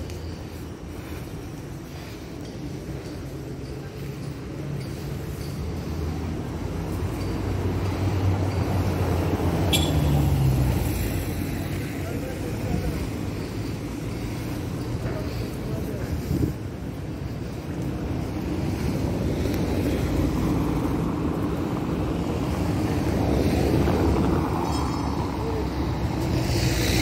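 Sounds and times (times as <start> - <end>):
passers-by talking: 0.0 - 27.0
traffic rumble: 0.0 - 27.0.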